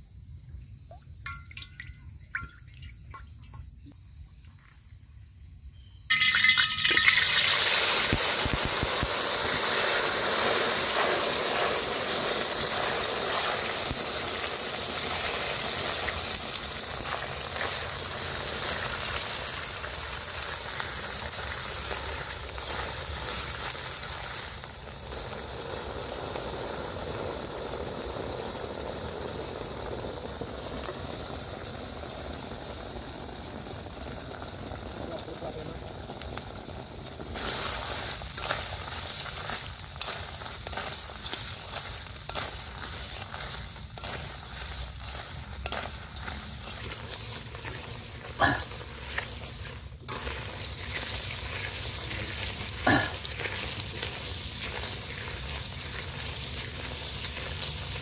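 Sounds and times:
frying in hot oil sizzling: 5.6s - 58.0s.

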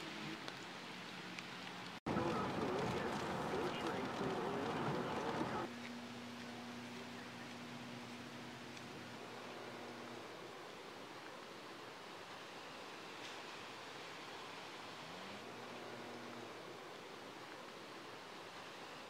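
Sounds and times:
storm weather hiss: 2.0s - 5.7s, 7.7s - 19.0s.

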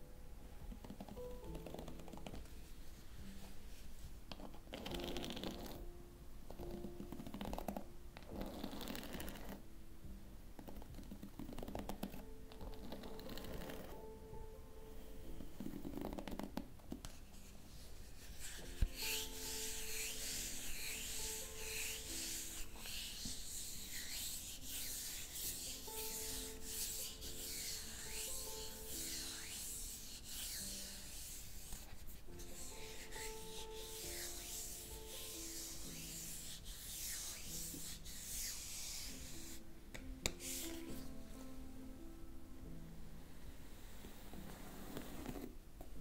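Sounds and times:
soft background music: 0.0s - 46.0s
hairbrush stroking through hair: 17.2s - 39.6s, 40.3s - 41.2s.

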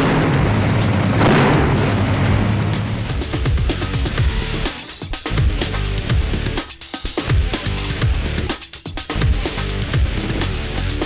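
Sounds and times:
dragster engine blast: 0.0s - 4.9s
music: 0.0s - 11.0s.

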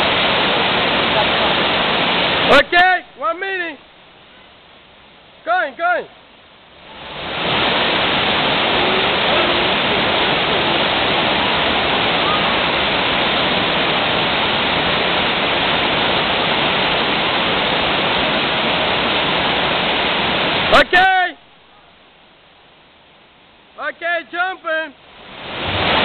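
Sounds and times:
waterfall rushing: 0.0s - 22.1s, 23.6s - 26.0s.

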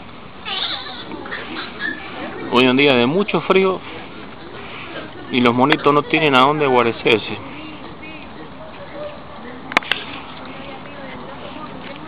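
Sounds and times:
monkey squealing: 0.4s - 2.1s.

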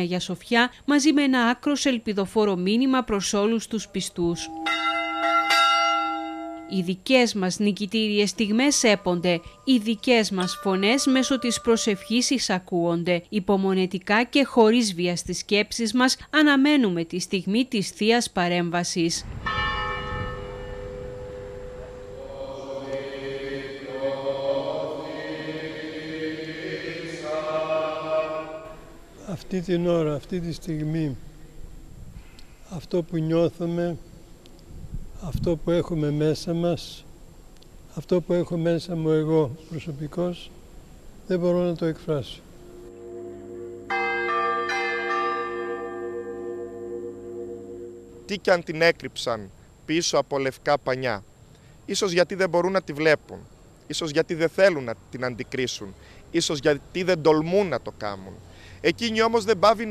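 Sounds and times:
church bell ringing: 4.4s - 6.9s, 8.4s - 12.3s, 19.4s - 22.9s, 42.7s - 48.5s
men chanting a slow hymn: 21.8s - 31.4s.

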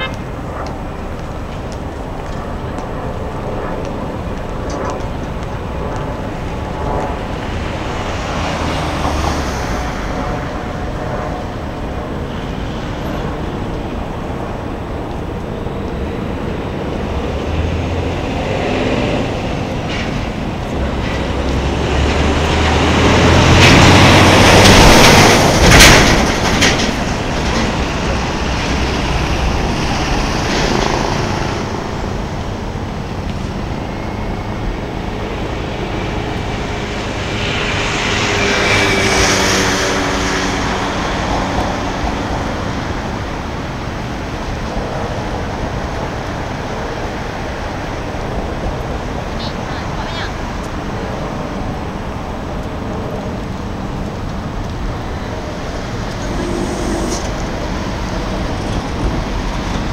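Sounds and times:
urban traffic rumble: 0.0s - 59.9s
vehicle passing close: 17.0s - 32.8s, 55.0s - 59.9s.

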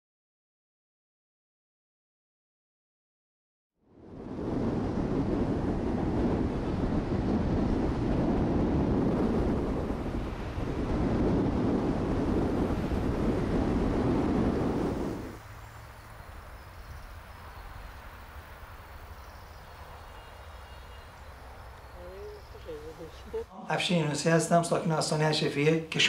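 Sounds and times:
wind: 3.8s - 26.0s
quiet outdoor ambience: 9.6s - 26.0s
road traffic: 15.0s - 24.3s.

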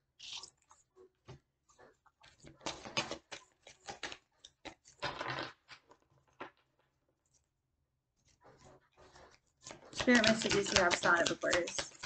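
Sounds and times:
cards shuffling: 9.7s - 12.0s.

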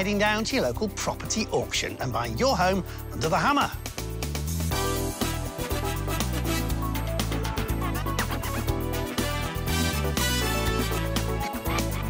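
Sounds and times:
theme music with beat and bass: 0.0s - 12.0s.

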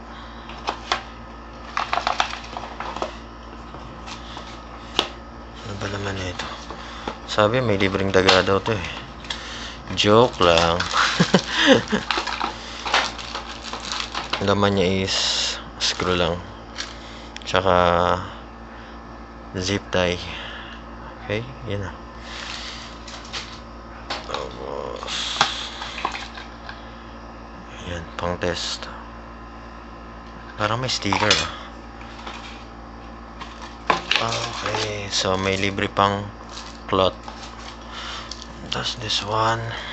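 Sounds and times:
steady low hum: 0.0s - 39.9s
plastic bag crinkling: 1.6s - 3.2s, 7.6s - 15.2s, 33.4s - 35.8s, 36.4s - 38.5s.

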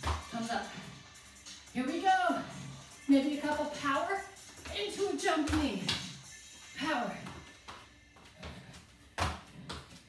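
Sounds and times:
feet thudding on exercise mat: 7.2s - 10.0s.

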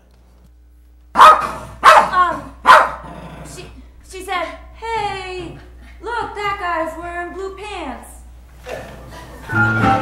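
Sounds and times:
small dog barking: 1.2s - 3.0s.

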